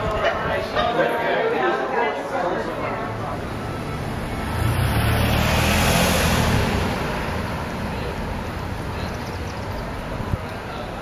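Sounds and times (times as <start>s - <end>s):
car driving by: 2.7s - 10.1s.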